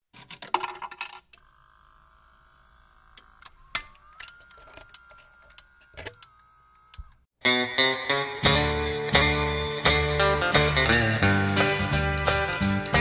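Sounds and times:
faint motor whine: 0:01.4 - 0:07.3
mechanical clicks: 0:02.7 - 0:07.2.

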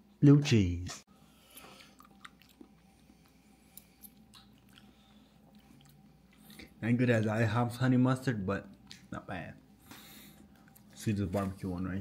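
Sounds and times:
chewing crunchy food: 0:01.4 - 0:06.8, 0:09.9 - 0:12.0.

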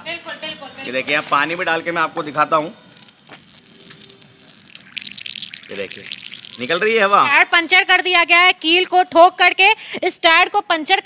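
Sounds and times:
water pouring and splashing: 0:03.3 - 0:07.4.

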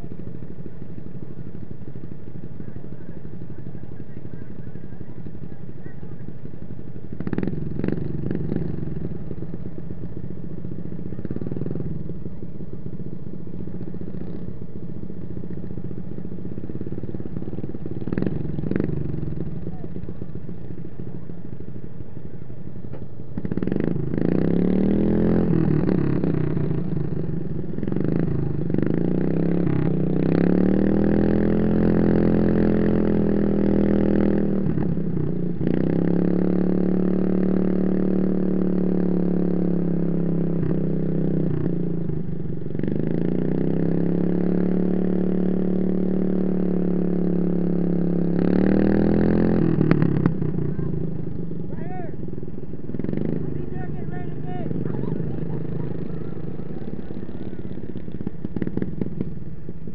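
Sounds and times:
riding lawn mower engine revving: 0:00.0 - 0:59.9.

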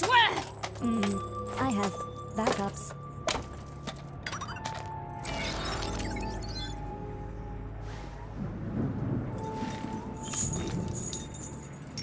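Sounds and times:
low rumble: 0:05.7 - 0:12.0
metal chain rattling: 0:09.4 - 0:12.0.

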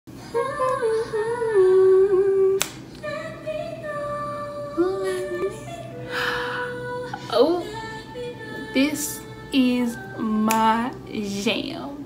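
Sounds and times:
woman singing wordless melody: 0:00.2 - 0:12.0.

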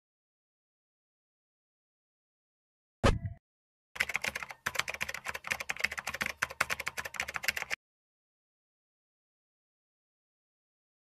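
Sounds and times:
rapid sharp clicks: 0:04.0 - 0:07.8.

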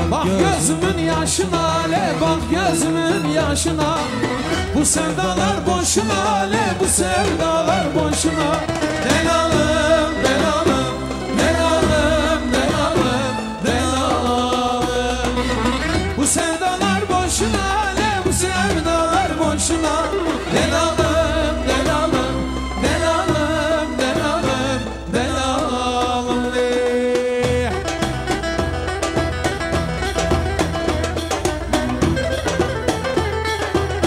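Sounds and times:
band playing folk-pop: 0:00.0 - 0:34.0
drum beat: 0:00.0 - 0:34.0
plucked-string melody: 0:00.0 - 0:34.0
steady bass: 0:00.0 - 0:34.0
violins: 0:00.0 - 0:34.0.

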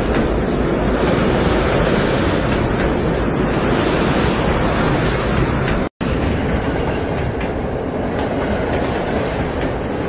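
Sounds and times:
train rumbling along rails: 0:00.0 - 0:10.0.

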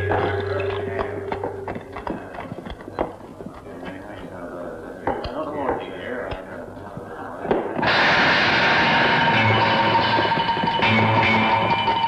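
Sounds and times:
held note of background music: 0:00.0 - 0:02.4.

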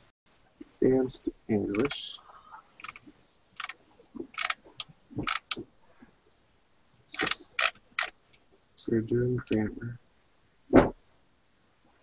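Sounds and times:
computer mouse clicking: 0:02.8 - 0:05.6, 0:07.2 - 0:08.2.

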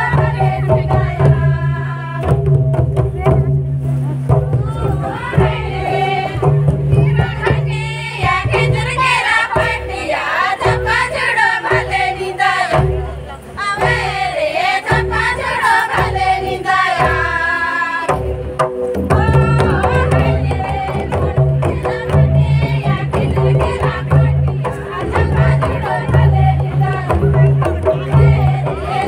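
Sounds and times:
group folk singing in unison: 0:00.0 - 0:03.0, 0:04.3 - 0:29.0
drum strikes: 0:00.0 - 0:29.0.

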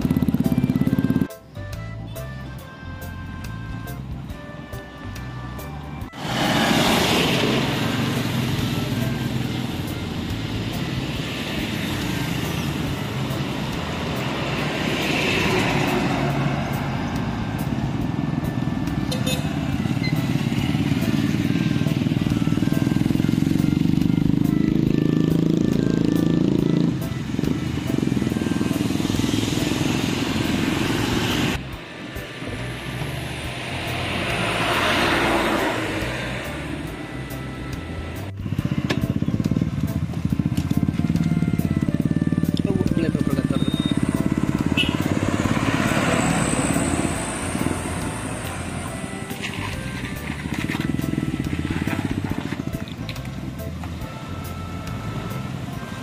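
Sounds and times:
motorcycles driving by: 0:00.0 - 0:01.3, 0:06.0 - 0:56.0
deep engine passing: 0:00.0 - 0:56.0.

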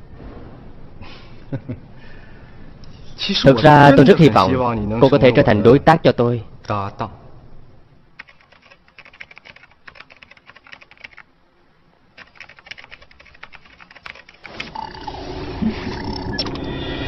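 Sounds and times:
rapid typing on keyboard: 0:08.2 - 0:11.2, 0:12.2 - 0:14.8.

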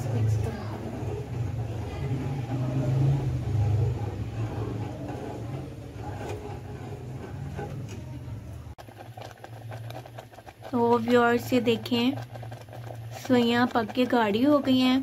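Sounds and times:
simmering pot ticking and popping: 0:00.0 - 0:07.8, 0:08.7 - 0:15.0
low mechanical hum: 0:00.0 - 0:15.0
metal spoon scraping pot: 0:00.0 - 0:15.0.

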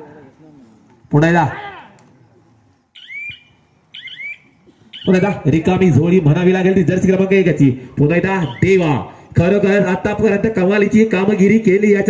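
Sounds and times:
high-pitched rising chirps: 0:02.9 - 0:05.7.

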